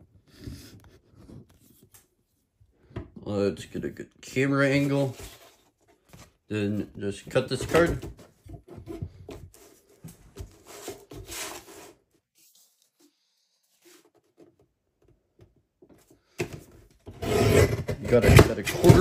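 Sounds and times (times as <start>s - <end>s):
card sliding and rustling: 9.5s - 14.3s.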